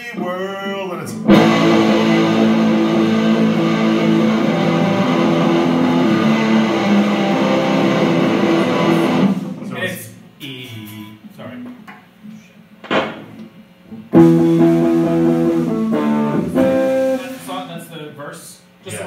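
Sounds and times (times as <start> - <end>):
light guitar picking: 1.2 - 9.7, 14.1 - 17.5
loud electric guitar chords: 1.2 - 9.7, 14.1 - 17.5.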